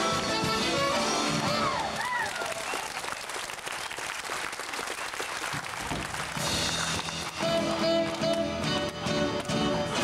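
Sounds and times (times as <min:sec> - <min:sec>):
band playing: 0:00.0 - 0:02.2, 0:06.0 - 0:10.0
audience clapping: 0:01.2 - 0:10.0.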